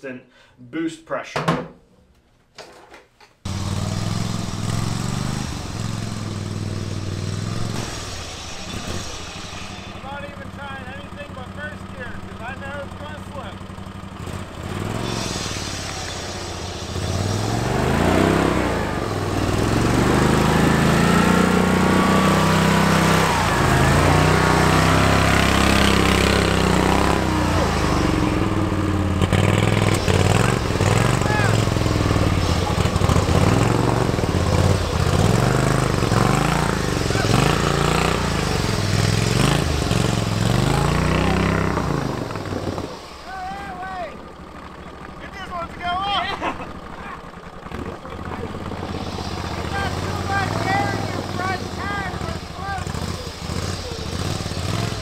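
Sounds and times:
tractor engine revving: 3.5 - 55.0.

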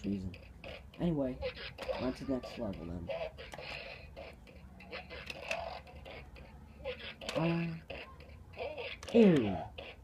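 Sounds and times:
toy control clicks: 0.0 - 10.0
toy voice cues and blips: 0.0 - 10.0.

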